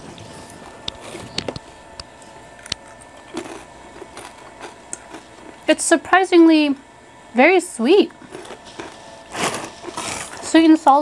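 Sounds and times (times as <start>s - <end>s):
person chewing crunchy chips: 2.2s - 5.7s, 8.1s - 10.6s.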